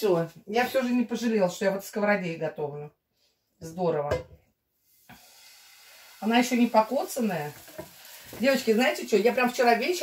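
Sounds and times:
batter sizzling in a frying pan: 4.8 - 10.0.

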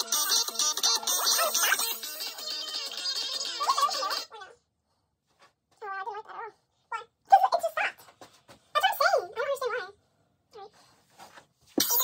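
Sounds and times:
music: 0.0 - 4.3
high-pitched wavering vocal sounds: 0.0 - 4.5.

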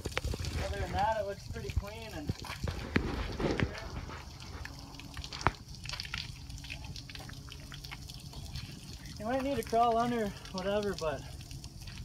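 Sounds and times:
water draining and dripping: 0.0 - 12.0.

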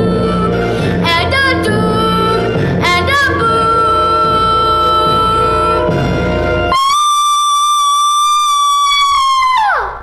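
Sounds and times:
musical theatre song: 0.0 - 7.1.

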